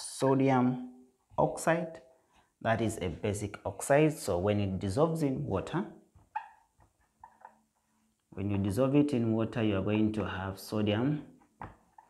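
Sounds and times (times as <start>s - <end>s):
marker squeaking on whiteboard: 6.2s - 8.1s, 11.8s - 12.0s.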